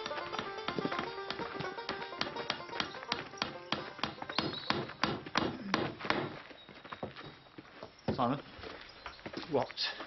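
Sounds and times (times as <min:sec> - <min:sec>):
background music: 0:00.0 - 0:04.8
hammer blows ringing: 0:00.0 - 0:06.4.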